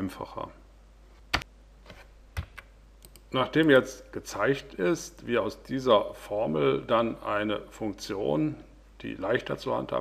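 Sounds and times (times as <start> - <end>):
computer mouse clicks: 1.4 - 3.3.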